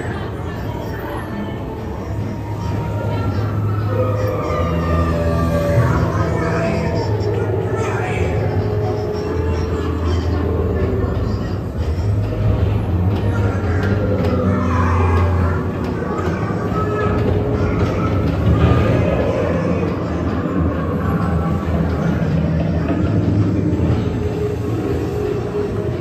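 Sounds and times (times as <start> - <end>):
background music: 0.0 - 26.0
ride vehicles rumbling on track: 0.0 - 26.0.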